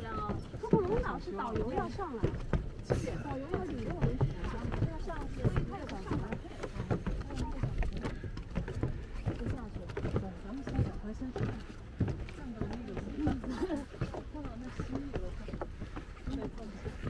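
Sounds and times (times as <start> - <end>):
indistinct conversation: 0.0 - 17.0.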